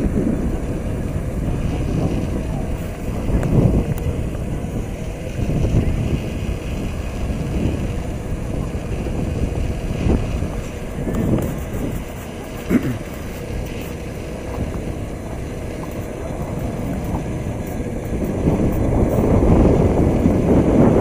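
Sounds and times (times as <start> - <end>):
faint voices: 0.0 - 19.9
wind buffeting microphone: 0.0 - 21.0.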